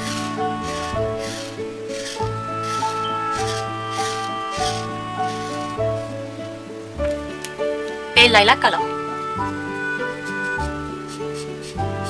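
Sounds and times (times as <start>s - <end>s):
marker scratching on paper: 0.0s - 5.7s
background music: 0.0s - 12.0s.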